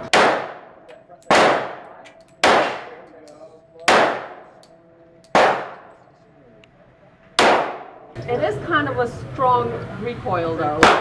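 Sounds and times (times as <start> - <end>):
gunshot echo off walls: 0.0 - 3.0, 3.8 - 4.6, 5.3 - 6.0, 7.4 - 8.1, 10.8 - 11.0
pistol shots: 0.0 - 3.0, 3.8 - 4.6, 5.3 - 6.0, 7.4 - 8.1.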